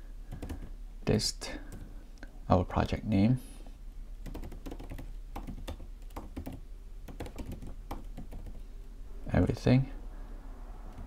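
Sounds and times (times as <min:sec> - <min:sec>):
computer keyboard typing: 0:00.3 - 0:00.7, 0:04.2 - 0:08.6.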